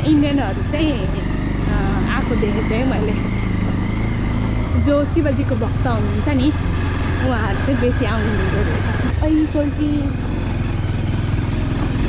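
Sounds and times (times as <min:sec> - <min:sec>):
woman talking: 0:00.0 - 0:03.3, 0:04.7 - 0:06.6, 0:07.2 - 0:10.2
motorcycle engine running: 0:00.0 - 0:12.0.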